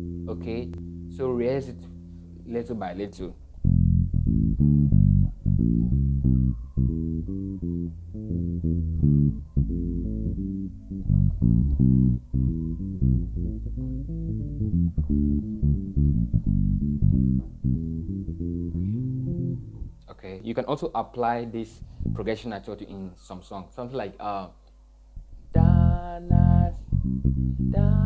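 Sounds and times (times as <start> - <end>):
electric bass reggae bassline: 0.0 - 20.1, 21.6 - 22.5, 25.2 - 28.0.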